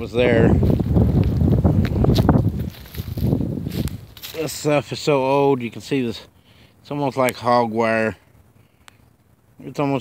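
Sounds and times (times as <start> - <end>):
wind buffeting microphone: 0.0 - 4.4
footsteps in dry leaves: 0.0 - 5.8.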